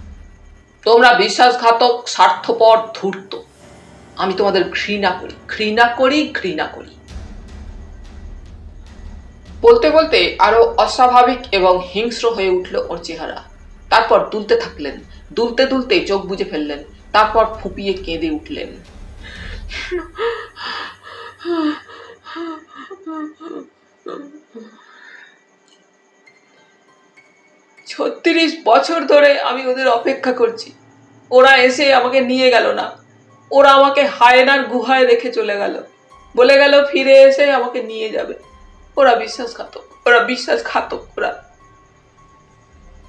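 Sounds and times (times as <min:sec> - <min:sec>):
low rumble: 0:00.0 - 0:01.6, 0:03.4 - 0:22.3
soft droning background music: 0:00.0 - 0:43.0
woman speaking: 0:00.8 - 0:03.5, 0:04.2 - 0:07.0, 0:09.6 - 0:24.8, 0:27.9 - 0:38.4, 0:39.0 - 0:41.4
woman sobbing: 0:19.7 - 0:24.9.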